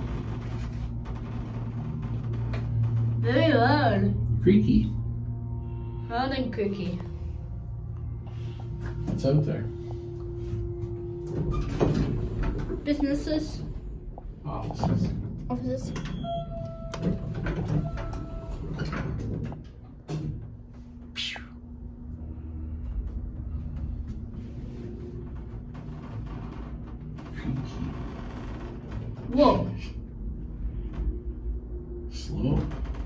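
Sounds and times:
elevator hum: 0.0 - 33.0
sliding doors opening: 10.9 - 13.5, 15.6 - 20.6.

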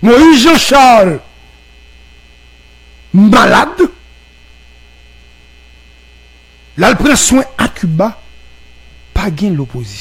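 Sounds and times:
low electrical hum: 0.0 - 10.0
man speaking: 3.1 - 4.0, 6.8 - 8.3, 9.1 - 10.0.

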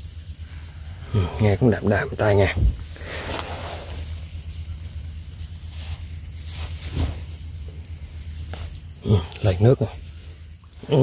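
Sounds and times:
rustling and crunching of dry soil: 0.0 - 11.0
steady low rumble: 0.0 - 11.0.

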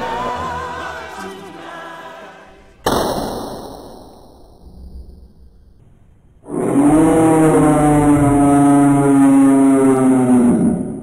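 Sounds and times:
low horn-like blast: 6.4 - 11.0.

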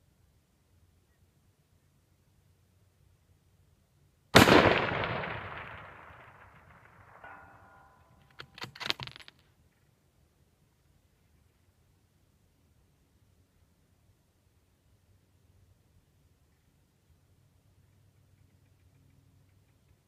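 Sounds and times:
rifle shot with rolling echo: 4.3 - 8.1
bullet ringing on steel target: 7.2 - 8.2.

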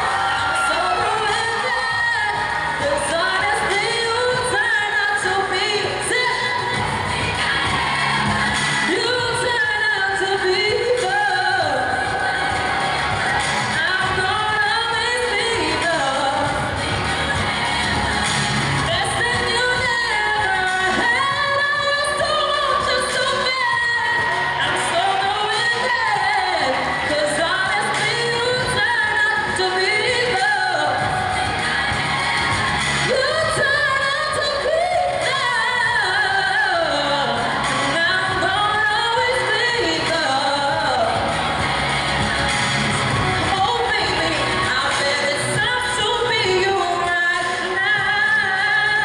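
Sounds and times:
backing music: 0.0 - 49.0
person singing into microphone: 0.0 - 49.0.

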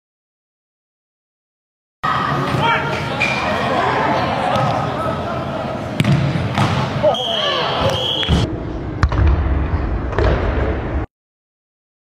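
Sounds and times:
ball kicked thuds: 6.0 - 6.8
referee's whistle: 7.1 - 8.5.

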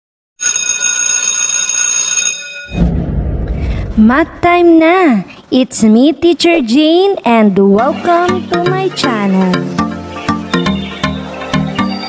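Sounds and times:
alarm clock bell ringing: 0.4 - 2.8.

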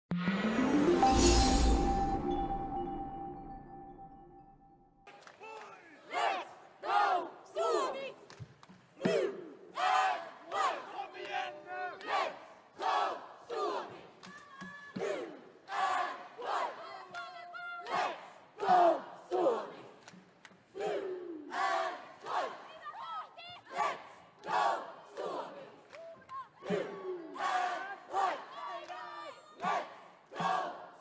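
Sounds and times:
group shouting a cheer in unison: 5.4 - 8.2, 9.0 - 19.9, 20.8 - 31.0.

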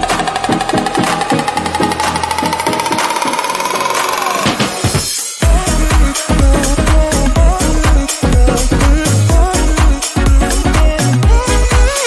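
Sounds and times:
slowly rising tone: 0.0 - 4.9
electronic music with steady beat: 0.0 - 12.0.

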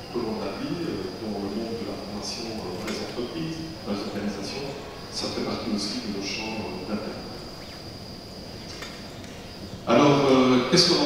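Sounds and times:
man talking: 0.0 - 7.4, 9.9 - 11.0
high-pitched whine: 0.0 - 11.0.

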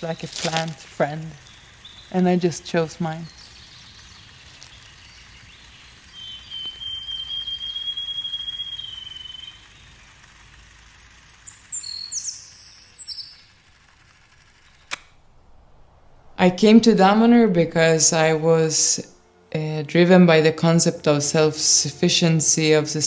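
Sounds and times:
high quick bird chirps: 3.2 - 10.2, 10.9 - 13.7
long thin bird whistle: 3.3 - 10.0, 11.0 - 13.5
sharp click: 14.6 - 15.2.

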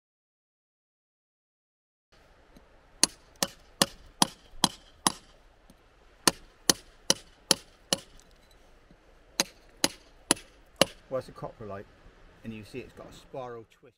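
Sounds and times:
mallet striking chisel on rock: 2.6 - 8.4, 9.4 - 11.0.

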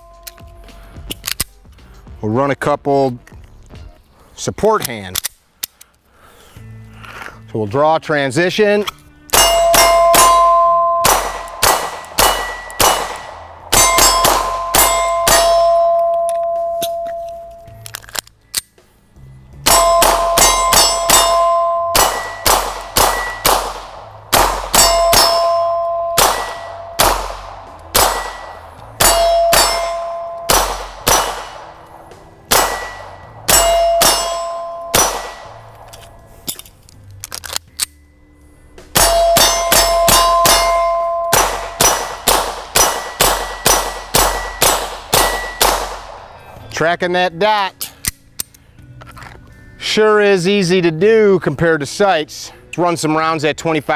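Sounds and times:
steel plates ringing clang: 0.0 - 0.7, 9.3 - 17.7, 19.6 - 23.6, 24.3 - 31.4, 32.5 - 36.7, 38.9 - 45.8
pistol shots: 9.3 - 16.0, 19.7 - 35.9, 38.9 - 46.3.

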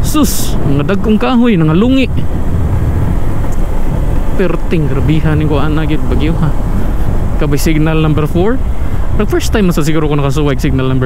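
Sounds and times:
motorcycle engine rumble: 0.0 - 11.0
road noise: 0.0 - 11.0
wind buffeting microphone: 0.0 - 11.0.

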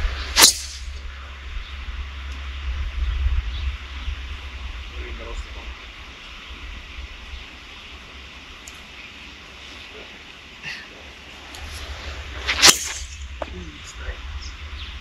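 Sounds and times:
golf club striking ball: 0.4 - 1.0, 12.5 - 13.5.

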